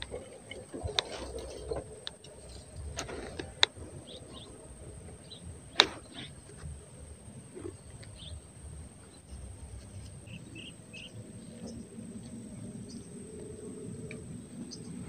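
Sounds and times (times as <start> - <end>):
faint bird chirps: 7.5 - 12.0.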